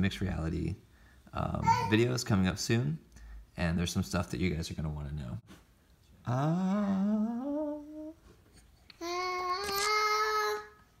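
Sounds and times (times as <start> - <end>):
person singing wavering notes: 6.3 - 8.2.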